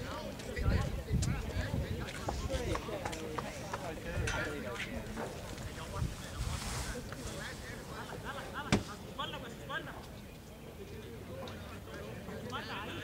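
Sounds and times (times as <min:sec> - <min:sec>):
wind rumble on microphone: 0:00.6 - 0:02.8, 0:03.9 - 0:07.5.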